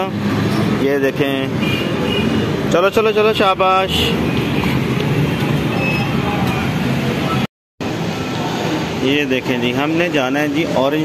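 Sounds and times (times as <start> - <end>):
road traffic noise: 0.0 - 11.0.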